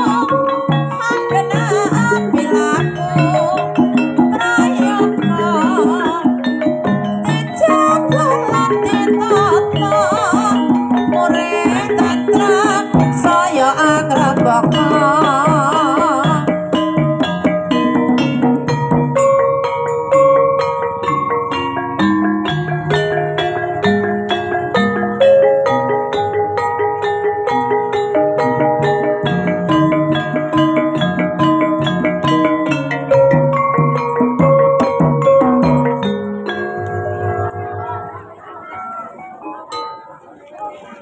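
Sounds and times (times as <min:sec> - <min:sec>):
gamelan bronze notes: 0:00.0 - 0:41.0
metallophones and gongs ringing: 0:00.0 - 0:41.0.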